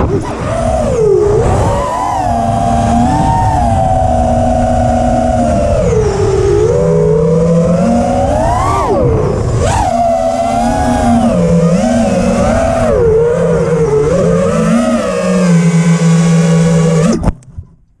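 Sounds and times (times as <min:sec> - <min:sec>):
drone motors and propellers whining: 0:00.0 - 0:17.8
low rumble: 0:00.0 - 0:18.0.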